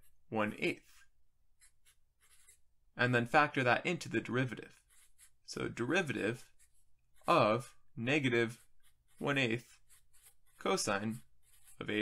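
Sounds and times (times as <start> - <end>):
marker writing on paper: 1.6 - 2.6, 4.7 - 12.0.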